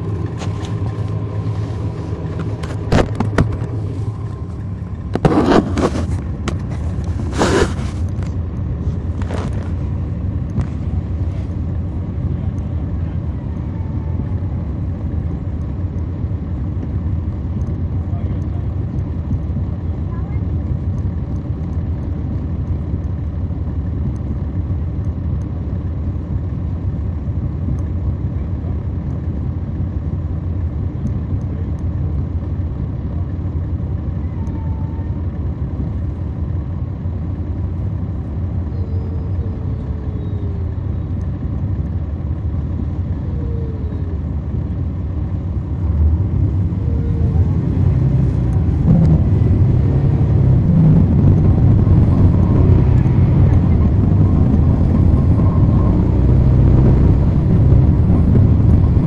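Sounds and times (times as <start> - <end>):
bus diesel engine droning: 0.0 - 59.0.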